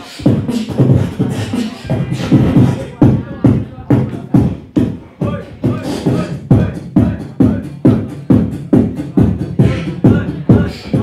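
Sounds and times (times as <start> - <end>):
beatboxing through microphone: 0.0 - 11.0.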